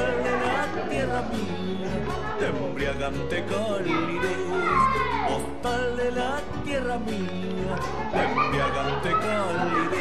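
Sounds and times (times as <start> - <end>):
song accompaniment with bass beat: 0.0 - 10.0.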